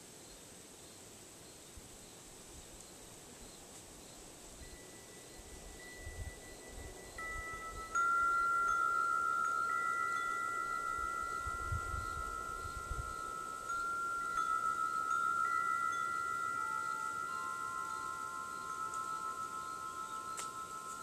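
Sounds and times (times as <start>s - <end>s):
metal wind chime ringing: 4.6s - 21.0s.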